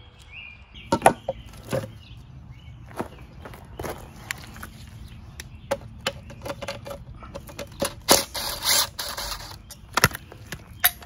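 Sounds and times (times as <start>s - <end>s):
faint birds chirping: 0.0s - 11.0s
metal case clunking and knocking: 0.9s - 2.0s.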